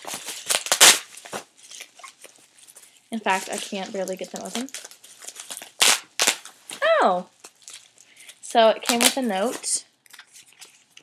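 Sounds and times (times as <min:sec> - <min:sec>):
plastic crinkling: 0:00.0 - 0:11.0
plastic wrapping tearing: 0:00.0 - 0:11.0.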